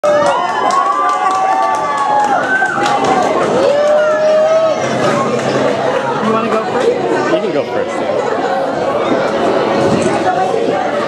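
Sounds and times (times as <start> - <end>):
children shouting: 0.0 - 7.2.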